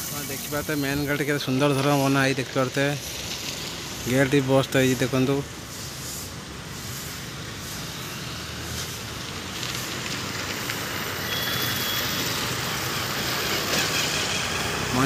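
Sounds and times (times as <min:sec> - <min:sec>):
road traffic noise: 0:00.0 - 0:15.0
short high beep: 0:11.3 - 0:12.2
vehicle passing: 0:12.1 - 0:15.0.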